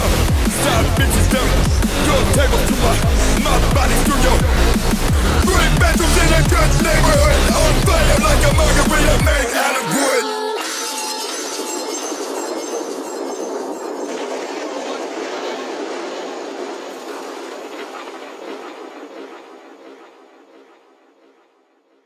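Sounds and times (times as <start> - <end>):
music: 0.0 - 13.1
dense thin noise: 10.6 - 22.0.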